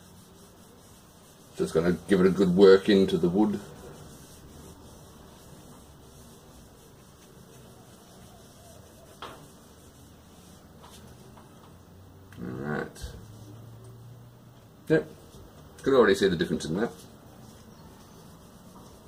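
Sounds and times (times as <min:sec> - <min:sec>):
cloth rubbing wood: 0:00.0 - 0:11.8, 0:16.8 - 0:19.0.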